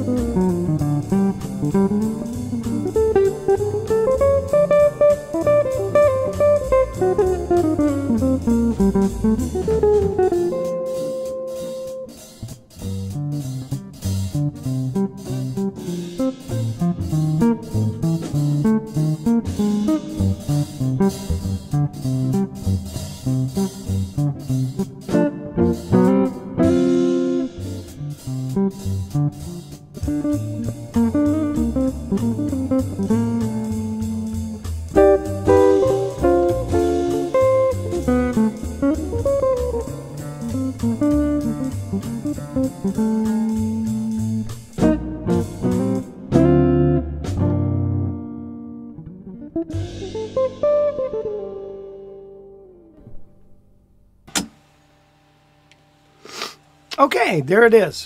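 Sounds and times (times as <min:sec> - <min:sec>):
backing track with bass and drums: 0:00.0 - 0:53.3
electric guitar jazzy blues lines: 0:00.0 - 0:53.5.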